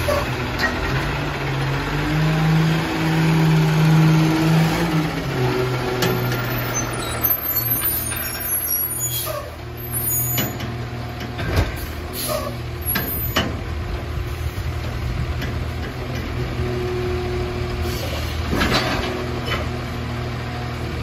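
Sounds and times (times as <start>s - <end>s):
garbage truck diesel engine: 0.0s - 21.0s
faint high squeaks: 6.5s - 10.6s
air brake hiss: 11.8s - 12.6s, 17.8s - 18.4s.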